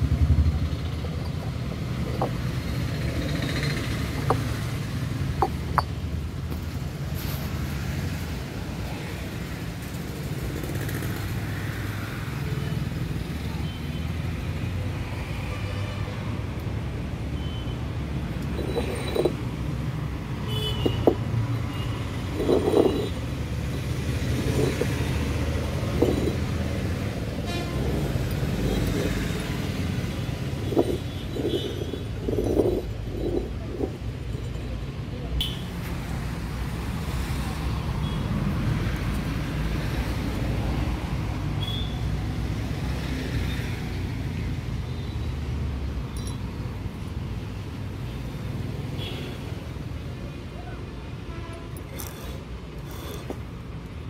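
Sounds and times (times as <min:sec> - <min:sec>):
road traffic rumble: 0:00.0 - 0:54.0.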